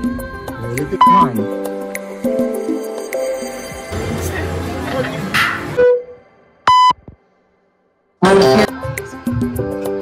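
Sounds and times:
loud electronic beep: 0:01.0 - 0:01.3, 0:05.8 - 0:07.0
people talking: 0:04.0 - 0:05.6, 0:08.2 - 0:08.7
electronic slot machine tones: 0:06.7 - 0:07.0.

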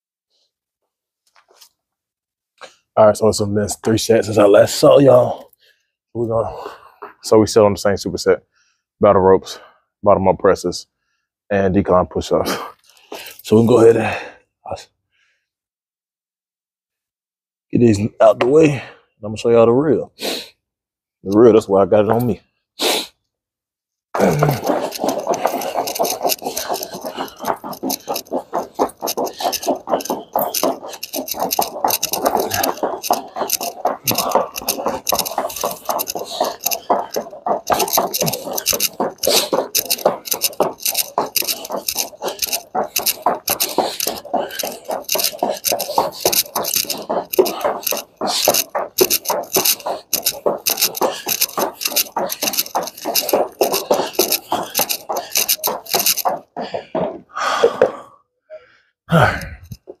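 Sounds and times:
battle ropes slapping wooden floor: 0:24.2 - 0:58.0.

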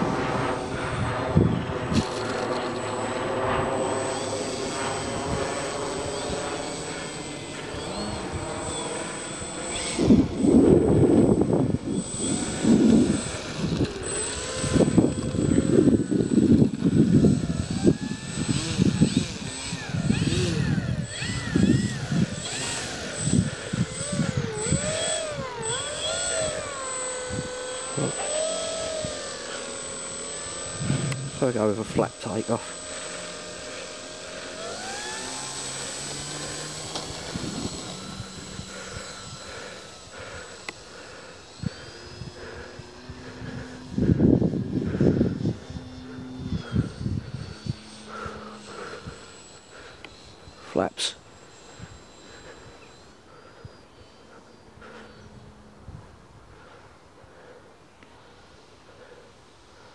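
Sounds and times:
wind rumble on microphone: 0:00.0 - 0:03.7, 0:09.7 - 0:27.6, 0:36.8 - 0:40.0, 0:41.6 - 0:49.2
electric motor and propeller whine: 0:00.0 - 0:59.9.

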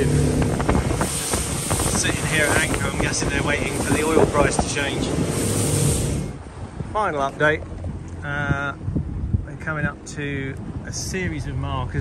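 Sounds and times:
water rushing past hull: 0:00.0 - 0:06.8
boat engine rumble: 0:00.0 - 0:12.0
wind buffeting microphone: 0:00.0 - 0:12.0.

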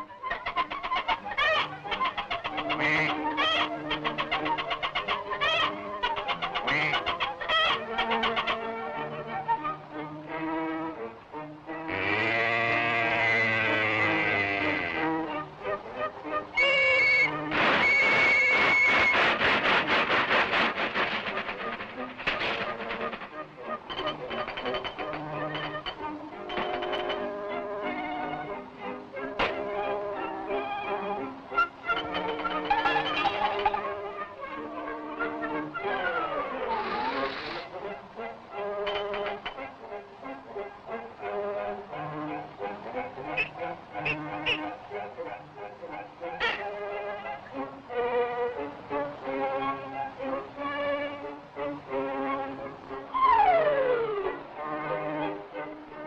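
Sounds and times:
poultry squawks and honks: 0:00.0 - 0:09.1, 0:11.7 - 0:15.4, 0:16.0 - 0:28.4, 0:31.6 - 0:37.7, 0:43.2 - 0:44.9, 0:46.0 - 0:47.5
orchestral music: 0:00.0 - 0:56.0.

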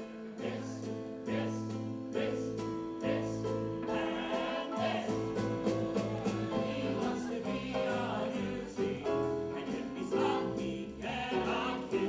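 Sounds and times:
chorus singing: 0:00.0 - 0:12.0
piano accompaniment: 0:00.0 - 0:12.0.

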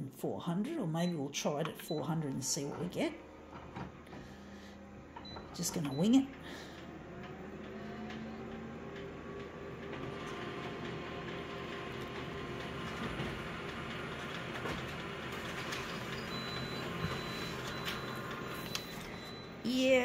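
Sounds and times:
copier whirring: 0:00.8 - 0:19.7.

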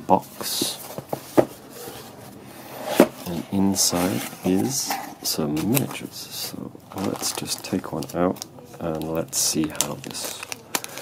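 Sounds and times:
cardboard rubbing and rustling: 0:00.4 - 0:06.0.

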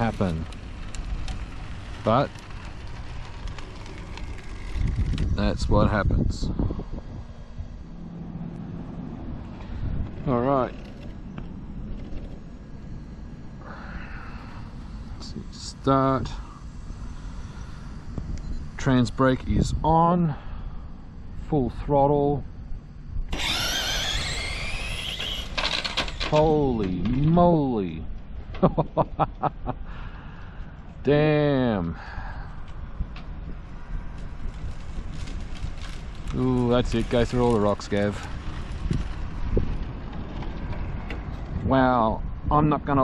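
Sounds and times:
faint steady background noise: 0:00.0 - 0:43.0
low outdoor rumble: 0:00.0 - 0:43.0
man laughing: 0:28.5 - 0:30.0.

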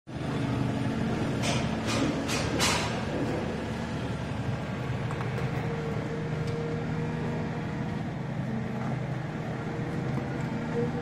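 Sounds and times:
diesel engine idling: 0:00.1 - 0:11.0.

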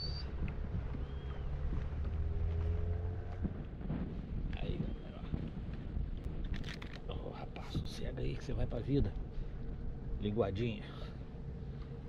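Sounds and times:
wind rumbling on microphone: 0:00.0 - 0:12.0
sharp crackling clicks: 0:06.4 - 0:07.2.

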